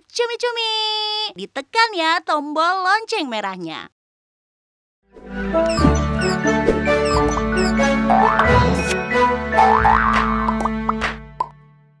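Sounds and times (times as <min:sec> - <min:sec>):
bright jingle music: 0:05.5 - 0:09.5.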